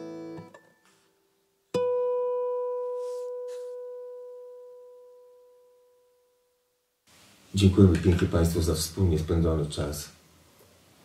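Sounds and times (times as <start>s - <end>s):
acoustic guitar note ringing: 1.7s - 6.4s.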